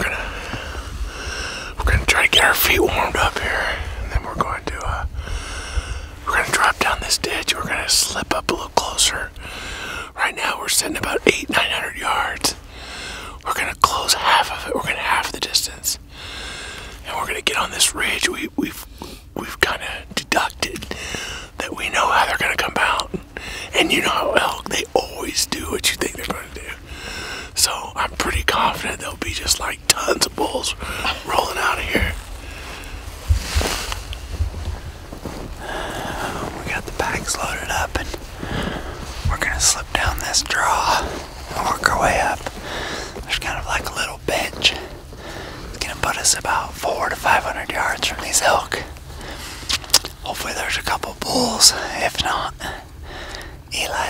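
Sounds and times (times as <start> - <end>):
man whispering: 0.0 - 54.0
low rumble: 18.5 - 49.4.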